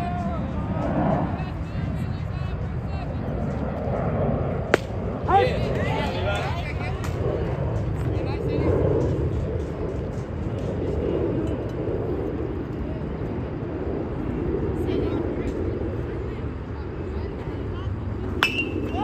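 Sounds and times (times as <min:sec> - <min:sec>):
murmur of voices: 0:00.0 - 0:10.1, 0:10.7 - 0:19.0
metal bat hitting ball: 0:04.7 - 0:04.9, 0:18.4 - 0:18.8.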